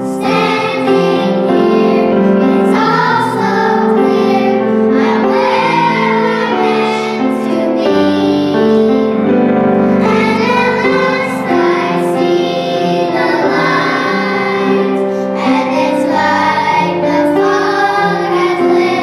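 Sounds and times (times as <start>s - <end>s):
girls singing together: 0.0s - 9.3s, 9.9s - 19.0s.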